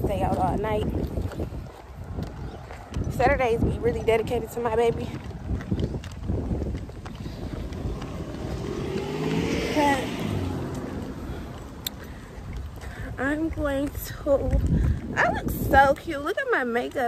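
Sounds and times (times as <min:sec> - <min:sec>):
wind rumbling on microphone: 0:00.0 - 0:17.0
vehicle passing by: 0:06.6 - 0:12.8.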